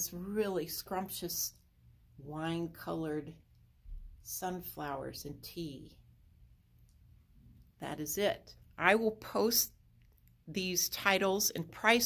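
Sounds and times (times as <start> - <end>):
woman speaking: 0.0 - 1.6, 2.2 - 3.4, 4.2 - 6.0, 7.8 - 9.8, 10.4 - 12.0
steady low hum: 0.0 - 12.0.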